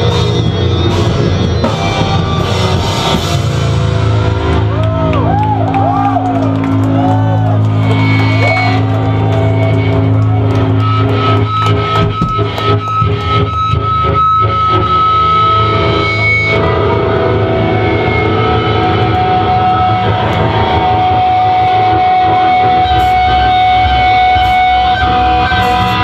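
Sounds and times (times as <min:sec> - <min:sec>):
distorted electric guitars: 0:00.0 - 0:26.0
drums: 0:00.0 - 0:26.0
heavy metal band playing: 0:00.0 - 0:26.0.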